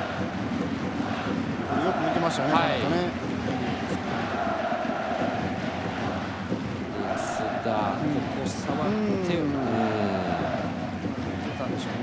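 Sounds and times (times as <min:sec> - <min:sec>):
stadium crowd roar: 0:00.0 - 0:12.0
crowd groaning: 0:08.8 - 0:10.9.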